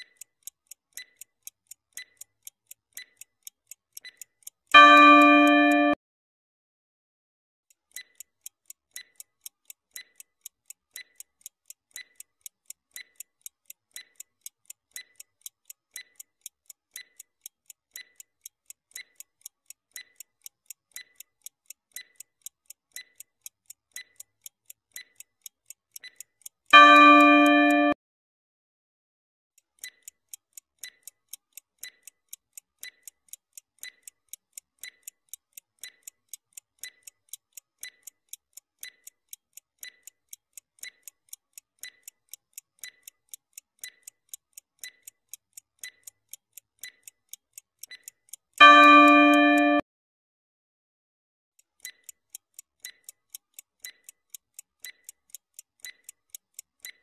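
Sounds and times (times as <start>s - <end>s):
clock ticking: 0.0s - 6.0s, 7.7s - 28.0s, 29.6s - 49.8s, 51.6s - 57.0s.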